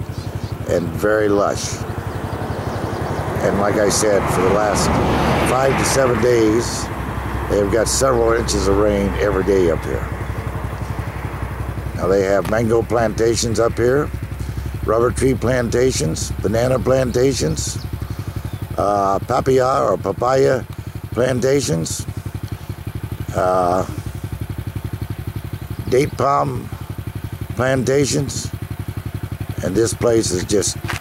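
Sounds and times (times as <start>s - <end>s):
engine idling: 0.0s - 31.0s.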